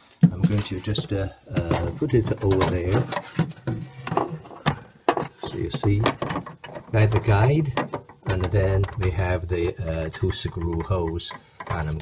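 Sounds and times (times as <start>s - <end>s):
plastic panel knocking and clicking: 0.2s - 12.0s.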